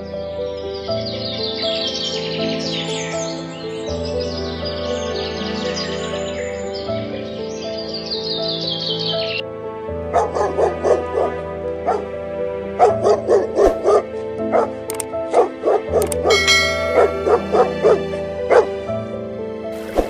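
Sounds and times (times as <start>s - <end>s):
background music: 0.0s - 20.0s
dog barking: 10.1s - 12.1s, 12.8s - 18.8s.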